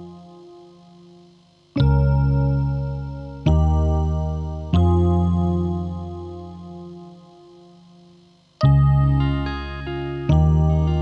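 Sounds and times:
bass and keyboard chords: 0.0 - 11.0.

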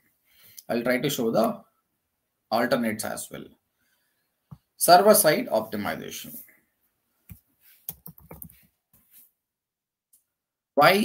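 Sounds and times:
keyboard taps: 7.9 - 8.5.

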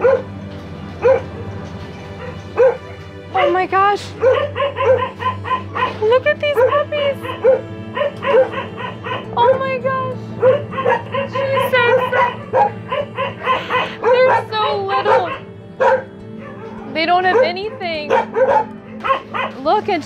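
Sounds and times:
dogs whining: 0.0 - 19.7
dogs barking and yelping: 0.0 - 20.0.

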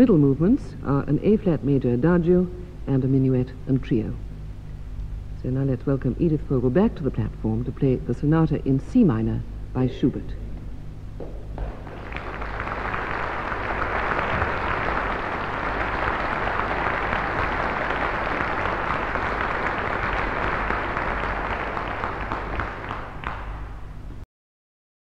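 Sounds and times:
audience applauding: 11.6 - 24.0.

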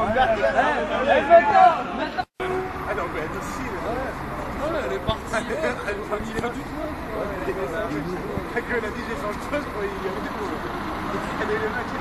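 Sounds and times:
street noise rumble: 0.0 - 12.0.

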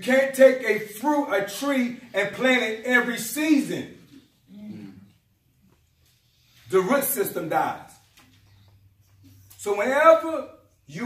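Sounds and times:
person murmuring: 4.5 - 5.2.

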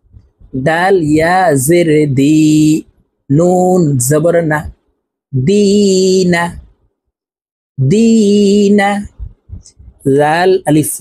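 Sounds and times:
man chanting syllables: 0.5 - 4.7.

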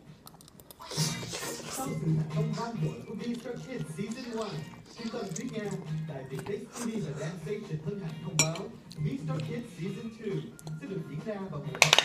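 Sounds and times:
fork clinking against ceramic bowl: 8.4 - 9.5.

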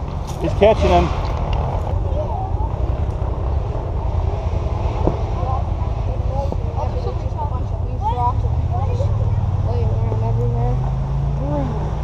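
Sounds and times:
distant motorcycles rumbling: 0.0 - 12.0
faint voices: 0.4 - 12.0.

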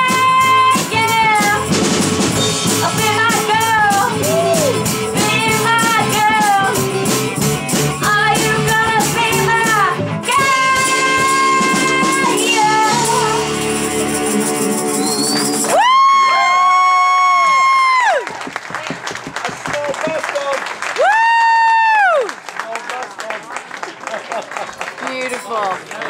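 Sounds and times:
rock band chord: 0.1 - 15.7
person singing: 2.8 - 7.1, 8.0 - 14.6
high-pitched cheers: 4.0 - 4.9, 14.8 - 18.5, 20.9 - 22.4
audience clapping: 14.9 - 26.0.

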